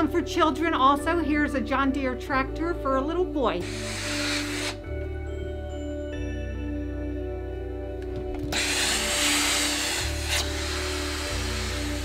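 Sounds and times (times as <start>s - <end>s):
soft music with low notes: 0.0s - 12.0s
burst of hiss: 3.6s - 4.9s, 8.5s - 12.0s.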